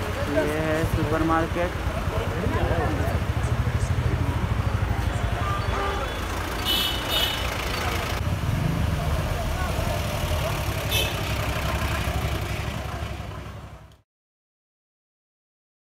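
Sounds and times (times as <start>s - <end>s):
vehicle engine running: 0.0s - 14.0s.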